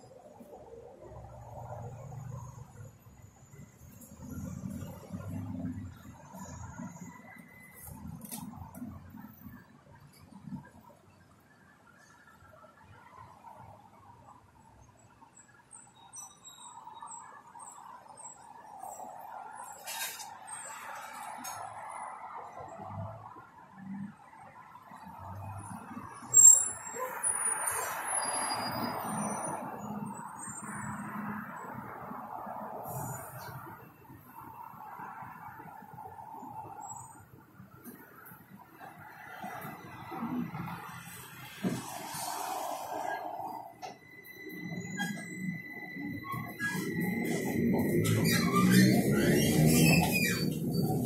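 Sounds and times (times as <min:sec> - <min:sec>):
trolleybus running hum: 0:00.0 - 0:51.0
high chirping squeaks: 0:44.0 - 0:51.0.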